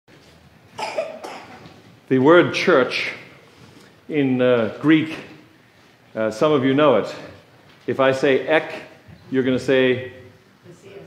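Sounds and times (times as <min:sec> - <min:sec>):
person coughing: 0:00.8 - 0:01.7.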